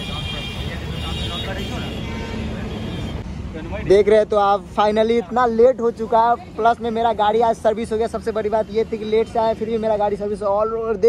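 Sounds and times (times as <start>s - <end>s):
rumble of vehicles: 0.0s - 11.0s.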